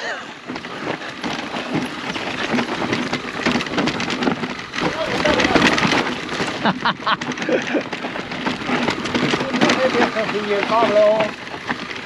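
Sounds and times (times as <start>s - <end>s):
bike rattling: 0.0s - 12.0s
tyres crunching on rocks: 0.4s - 12.0s.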